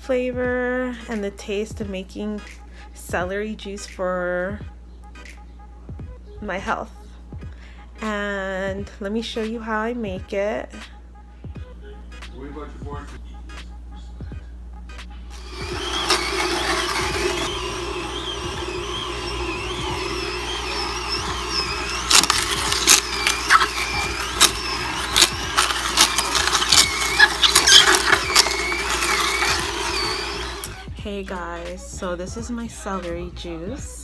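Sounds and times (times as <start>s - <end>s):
juicer switch: 15.3s - 30.8s
juicer motor hum: 15.3s - 30.9s
celery cracking and snapping: 22.0s - 30.1s.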